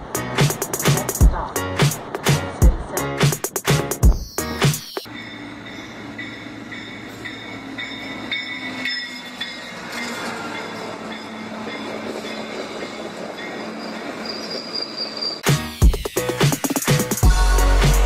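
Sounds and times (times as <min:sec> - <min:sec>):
commuter train rolling past: 0:00.0 - 0:18.0
high-pitched wheel squeals: 0:12.3 - 0:15.5.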